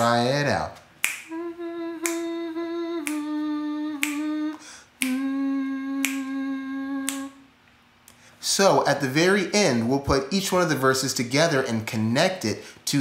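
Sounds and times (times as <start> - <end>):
finger snaps: 1.0 - 1.4, 2.0 - 8.3
long held notes: 1.3 - 7.5.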